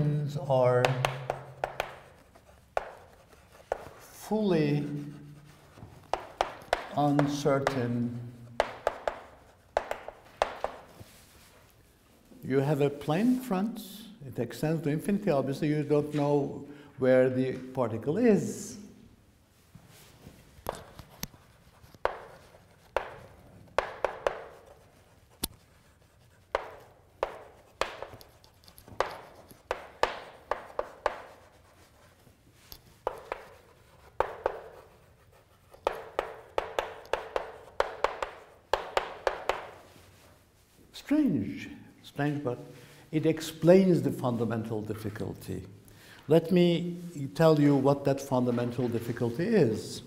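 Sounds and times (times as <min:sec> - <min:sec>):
chalk tapping on blackboard: 0:00.6 - 0:11.6, 0:20.6 - 0:40.4.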